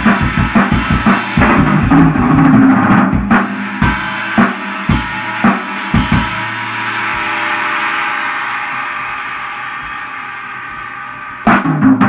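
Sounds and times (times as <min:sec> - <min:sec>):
cymbals ringing: 0:00.0 - 0:02.5, 0:03.3 - 0:12.0
hard drum hit: 0:00.0 - 0:12.0.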